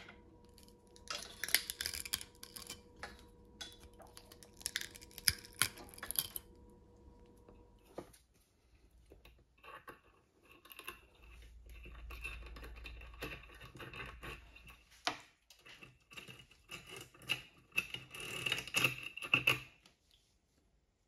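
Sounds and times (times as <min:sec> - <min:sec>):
small hard objects clicking: 0:00.5 - 0:06.5.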